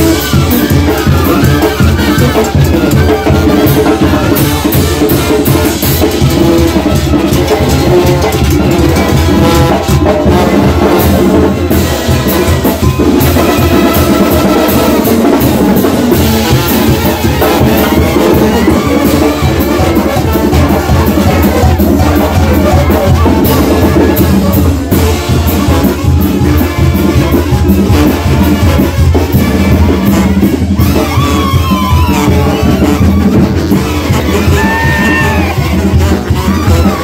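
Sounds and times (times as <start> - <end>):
banda playing dance music: 0.0 - 37.0
congas: 0.0 - 37.0
trumpets: 0.0 - 37.0.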